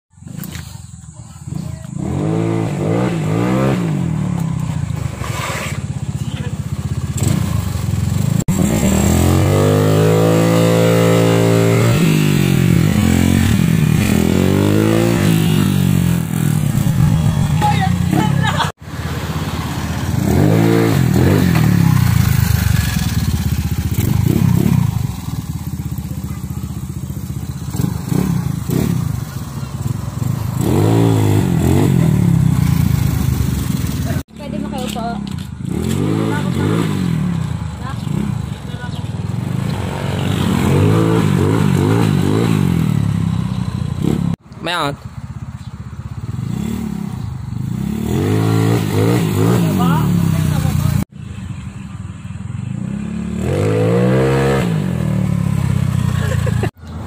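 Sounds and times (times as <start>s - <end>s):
scooter engines revving: 0.2s - 57.0s.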